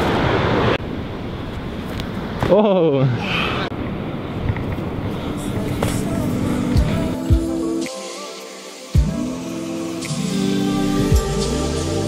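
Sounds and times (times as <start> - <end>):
steady music tone: 5.4 - 12.0.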